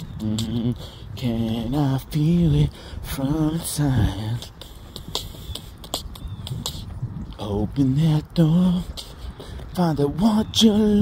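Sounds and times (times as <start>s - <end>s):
sharp clicks: 0.0s - 2.2s, 3.2s - 10.0s.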